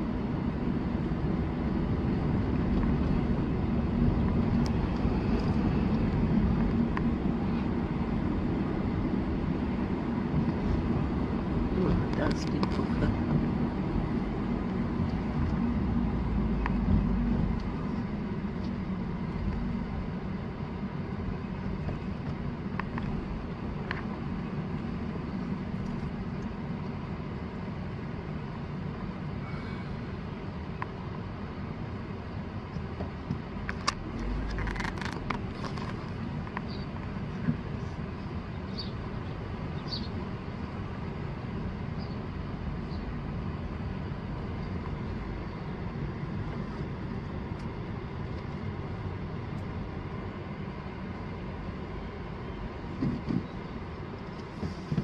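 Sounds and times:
vehicle engine rumble: 0.0 - 55.0.

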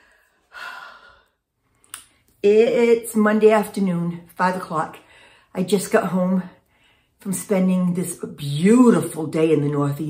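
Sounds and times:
woman sighing: 0.0 - 1.4.

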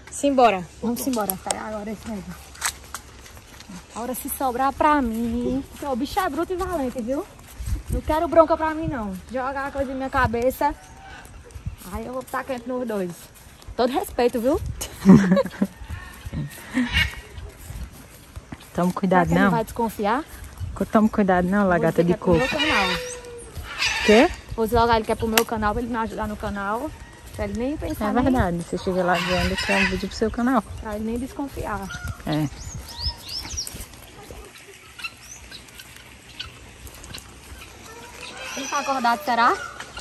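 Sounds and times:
birds chirping: 0.0 - 40.0
woman laughing: 14.8 - 17.3.

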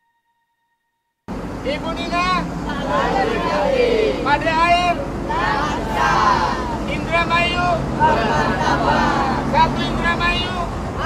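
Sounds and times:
low engine hum: 1.3 - 11.0
people calling out together: 2.0 - 10.8.

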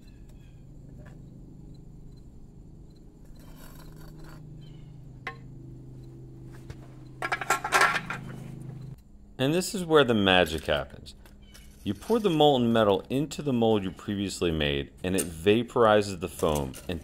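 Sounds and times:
furnace burner humming: 0.0 - 17.0
metal clatter: 7.1 - 8.8
spoon scraping molten metal: 11.5 - 12.7.

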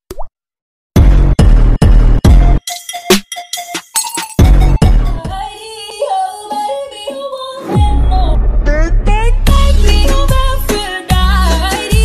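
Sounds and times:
high melody line: 2.6 - 7.1
deep bass note: 7.8 - 10.8.

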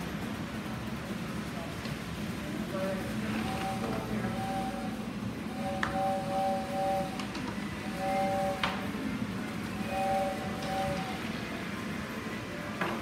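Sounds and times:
electronic carnival tune: 3.5 - 7.2, 7.8 - 8.9, 9.6 - 11.6.

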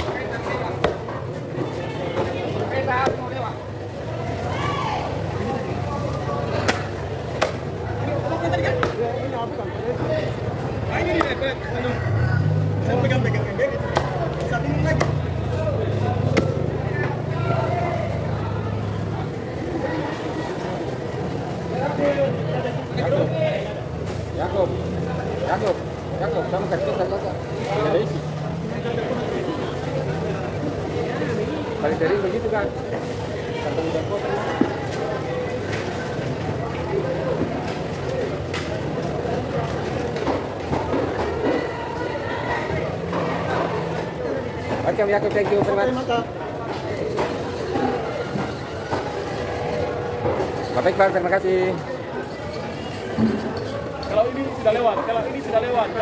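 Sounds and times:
market hubbub: 0.0 - 56.0
people talking: 0.0 - 56.0.

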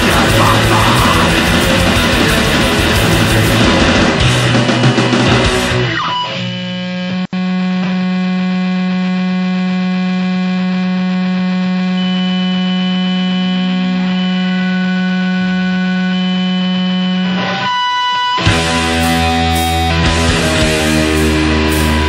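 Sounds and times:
loud low buzzing drone: 0.0 - 4.7, 6.5 - 17.3.

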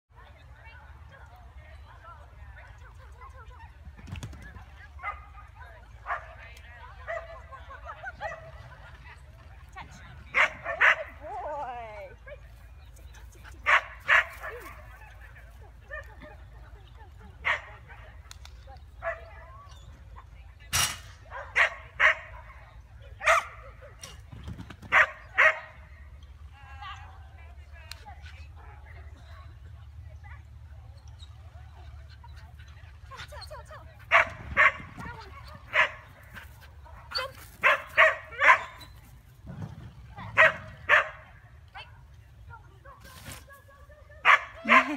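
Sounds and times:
dog barking: 23.2 - 23.5, 34.1 - 34.9, 37.2 - 38.7, 40.4 - 41.2, 44.2 - 44.9.

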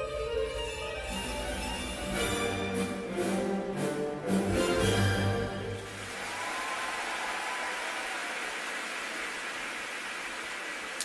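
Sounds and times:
arena audience applauding: 5.8 - 11.0.

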